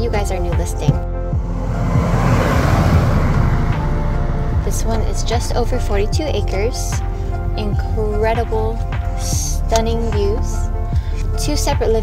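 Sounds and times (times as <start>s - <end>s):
pickup truck driving past: 1.0s - 7.6s.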